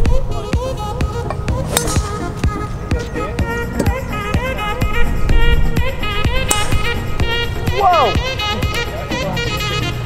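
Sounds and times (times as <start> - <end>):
background music with steady beat: 0.0 - 10.0
golf club striking ball: 1.3 - 4.5, 6.2 - 7.6
person exclaiming: 7.7 - 8.3.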